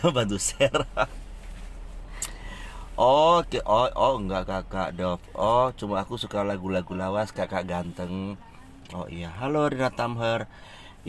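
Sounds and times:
car cabin hum: 0:00.0 - 0:10.7
soft breathy hiss: 0:01.7 - 0:03.0.

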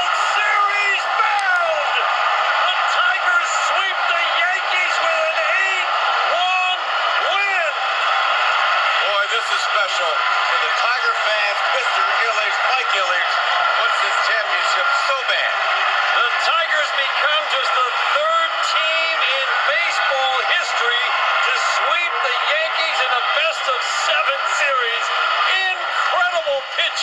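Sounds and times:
crowd cheering and shouting: 0:00.0 - 0:27.0.

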